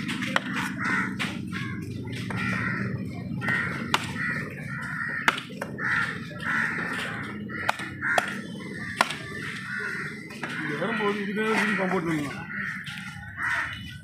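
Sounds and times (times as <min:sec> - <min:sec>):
crows cawing: 0:00.0 - 0:14.0
knife chopping fish on wood: 0:05.2 - 0:05.6, 0:09.0 - 0:09.2.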